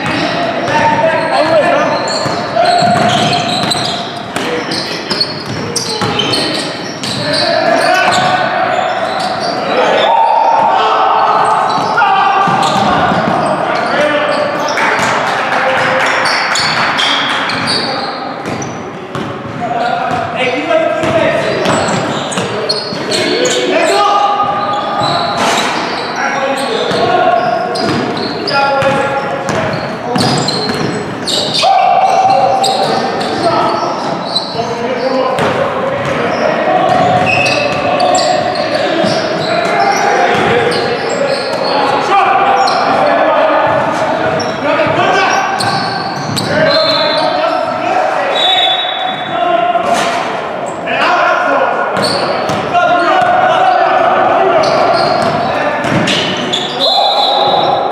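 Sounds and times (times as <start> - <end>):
players calling out: 0.0 - 57.9
basketball bouncing on wooden floor: 2.2 - 4.5.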